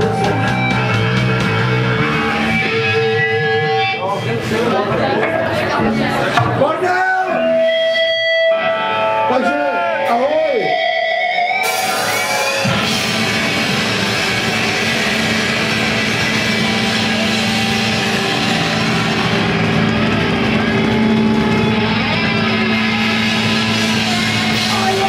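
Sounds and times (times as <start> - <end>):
drum kit: 0.0 - 4.0, 11.5 - 25.0
bass guitar: 0.0 - 25.0
distorted electric guitar: 0.0 - 25.0.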